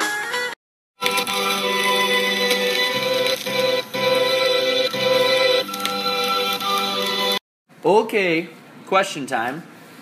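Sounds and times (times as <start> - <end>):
music with sustained chords: 1.0 - 7.4.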